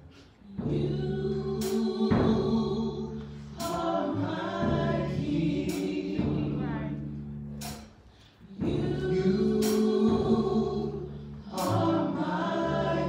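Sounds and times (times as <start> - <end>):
electric bass notes: 0.0 - 13.0
percussion hits: 7.6 - 8.1.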